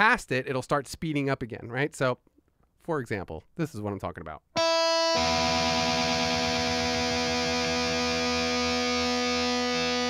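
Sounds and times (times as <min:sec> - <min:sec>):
distorted electric guitar notes: 0:04.6 - 0:10.0.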